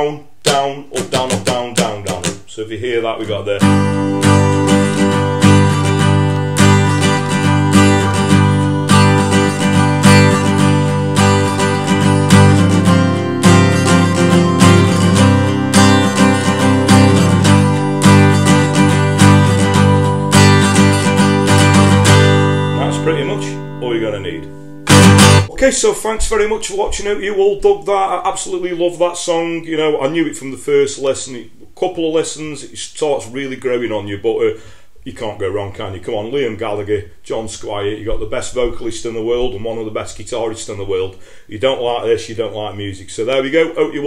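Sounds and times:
acoustic guitar strumming: 0:00.0 - 0:02.5, 0:03.2 - 0:25.8.

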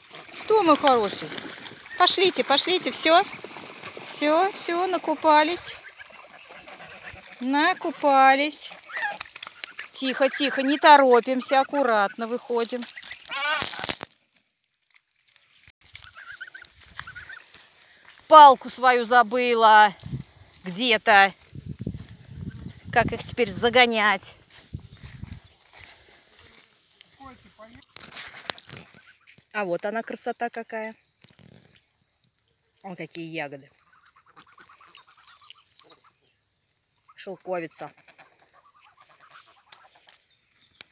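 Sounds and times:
geese gabbling: 0:00.0 - 0:13.7, 0:16.0 - 0:17.6, 0:28.6 - 0:30.1, 0:33.7 - 0:36.3, 0:37.0 - 0:40.1
goslings peeping: 0:04.1 - 0:13.8, 0:15.9 - 0:17.6, 0:27.7 - 0:30.2, 0:33.7 - 0:36.4, 0:37.0 - 0:40.1.

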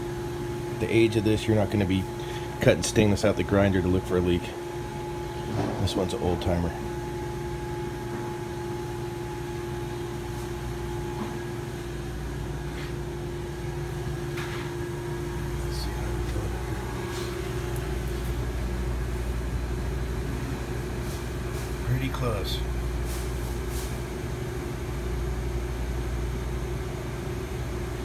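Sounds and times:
refrigeration unit humming: 0:00.0 - 0:28.0.

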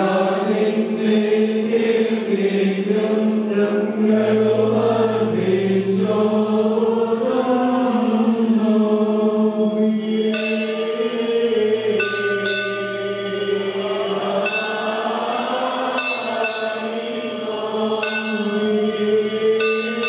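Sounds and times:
men chanting a hymn: 0:00.0 - 0:20.0
small bells ringing: 0:09.6 - 0:20.0.

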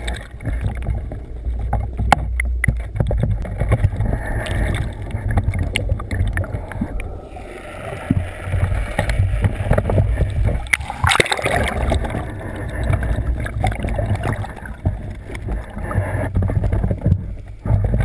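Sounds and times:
muffled underwater water rumble: 0:00.0 - 0:18.0
sharp clicks and knocks: 0:01.6 - 0:06.5.

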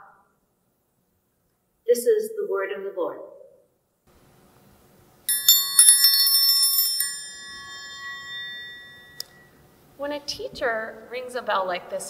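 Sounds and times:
small metal bell ringing: 0:05.3 - 0:09.5.

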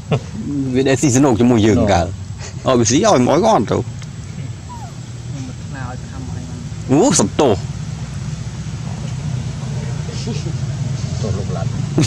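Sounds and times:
low motor-like rumble: 0:00.1 - 0:12.0
faint voices: 0:03.7 - 0:07.6.

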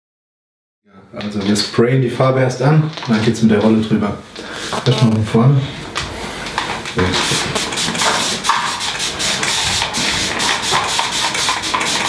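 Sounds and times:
aerosol spray hissing: 0:07.1 - 0:12.0.

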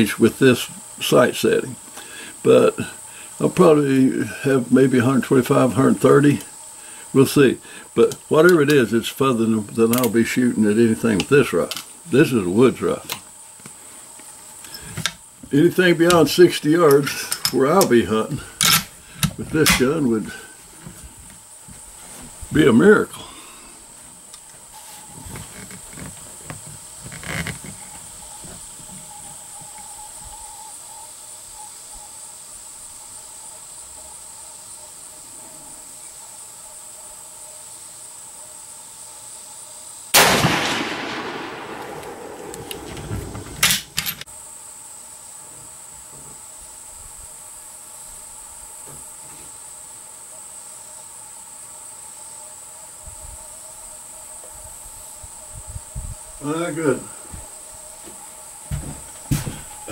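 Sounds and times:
high insect buzz: 0:00.0 - 0:59.9
rifle shot echoing: 0:40.2 - 0:44.0.

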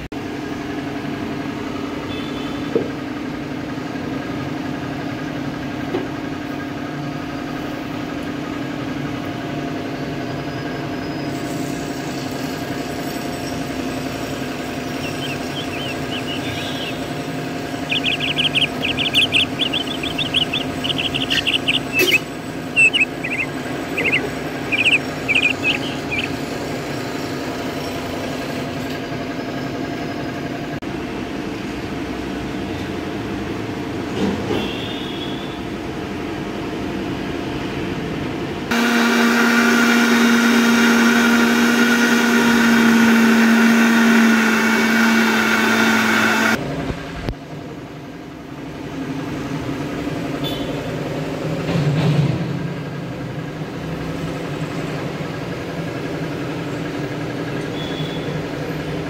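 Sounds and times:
mixer grinder motor whining: 0:13.6 - 0:27.4, 0:38.7 - 0:46.6.

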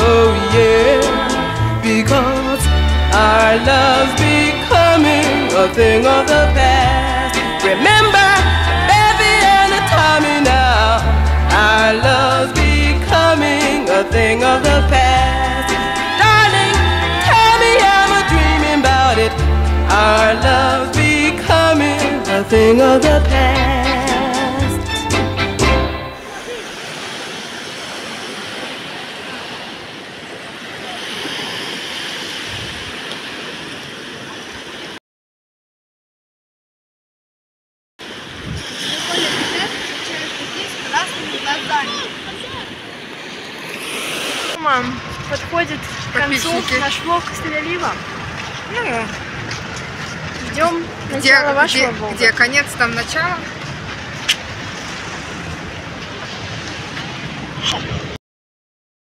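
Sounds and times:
surf washing onto beach: 0:00.0 - 0:22.7, 0:26.1 - 0:35.0, 0:38.0 - 0:58.2
street traffic passing: 0:00.0 - 0:29.0, 0:38.0 - 0:57.6
wind rumbling on microphone: 0:32.3 - 0:35.0, 0:38.0 - 0:58.2.

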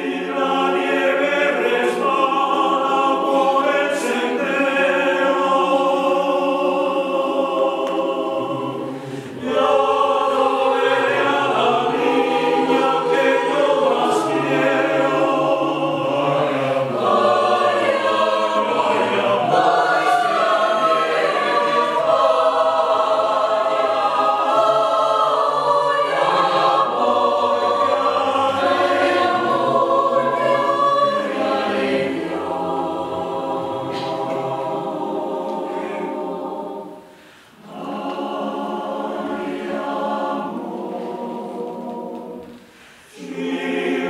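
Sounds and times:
mixed choir singing a cappella: 0:00.0 - 0:44.0.

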